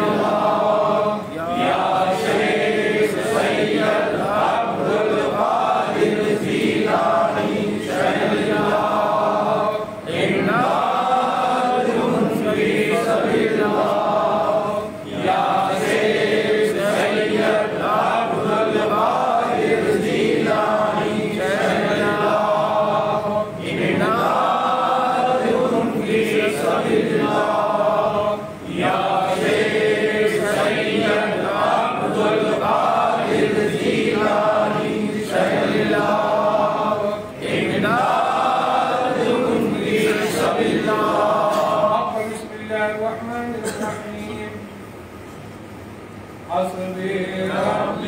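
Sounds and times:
men chanting: 0.0 - 43.0, 46.7 - 48.0.

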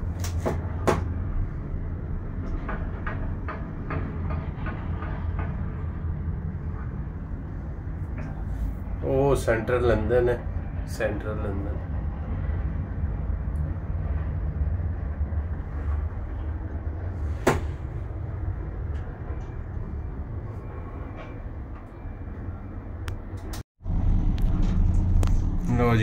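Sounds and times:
cable car cabin rumble: 0.0 - 26.0.

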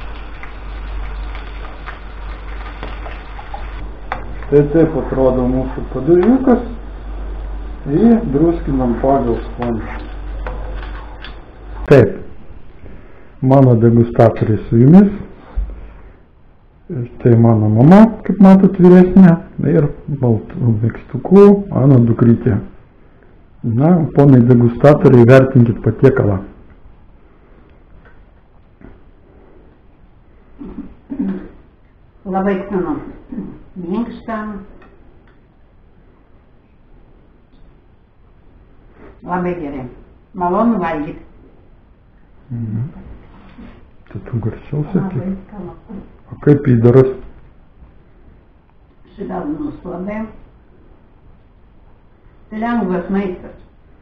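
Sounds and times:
pancakes sizzling in frying pan: 0.0 - 3.8
constant low hum: 0.0 - 54.0
man speaking: 3.8 - 7.0, 7.8 - 10.1, 11.8 - 12.4, 13.4 - 15.4, 16.9 - 22.8, 23.6 - 26.6, 42.5 - 43.1, 44.1 - 45.4, 46.3 - 47.3
person murmuring: 42.5 - 43.1.

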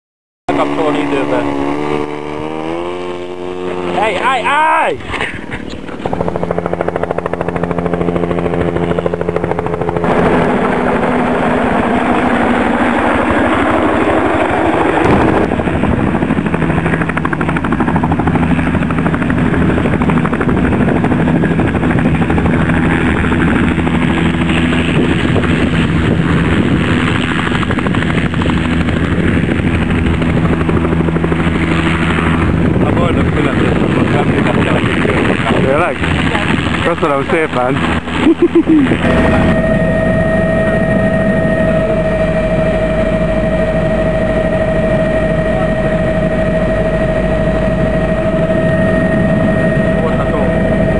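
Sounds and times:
model helicopter rotor humming: 0.5 - 50.9.

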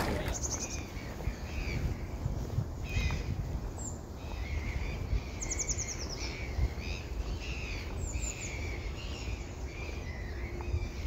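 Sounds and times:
small birds chirping and singing: 0.0 - 11.0.

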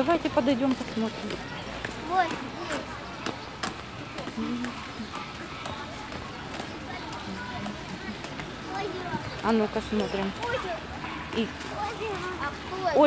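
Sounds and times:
footsteps on paved path: 0.0 - 13.0
people talking: 0.0 - 13.0.

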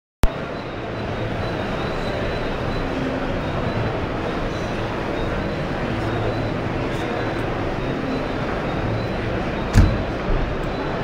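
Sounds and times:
murmur of many voices: 0.2 - 11.0.

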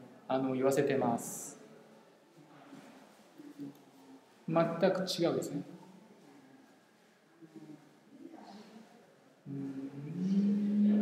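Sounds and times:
man humming: 9.5 - 11.0.

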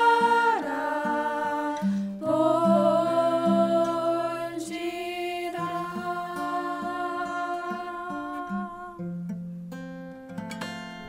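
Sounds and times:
women singing held note: 0.0 - 9.0
picked acoustic guitar: 0.0 - 11.0.

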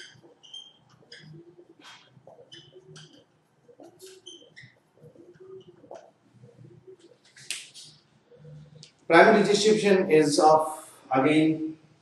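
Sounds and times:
marker squeaking on whiteboard: 0.0 - 8.8.

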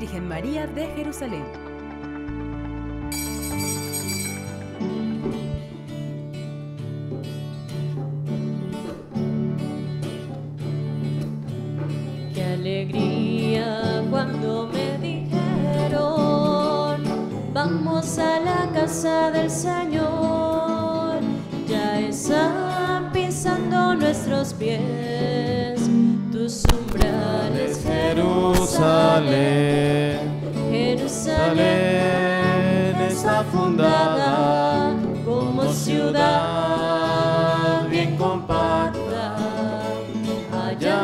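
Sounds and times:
hymn played on keyboard: 27.0 - 39.8.

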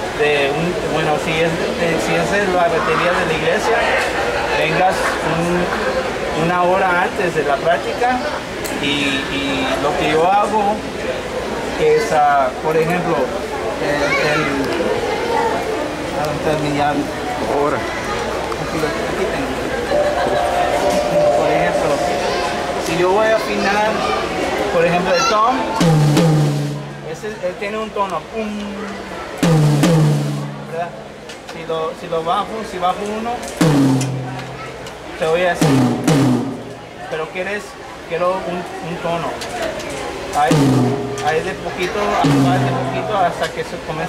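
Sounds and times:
people talking: 0.0 - 26.0, 26.6 - 29.4, 30.3 - 35.9, 36.6 - 44.0
children's voices: 13.4 - 16.1, 17.0 - 25.8, 34.3 - 35.2
tom drum hit ringing: 19.9 - 23.1, 25.7 - 27.3, 29.4 - 31.3, 33.6 - 34.8, 35.6 - 36.9, 40.5 - 43.4.

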